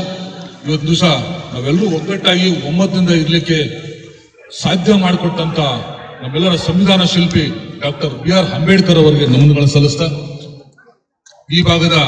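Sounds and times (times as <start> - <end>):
man speaking into a microphone: 0.0 - 12.0.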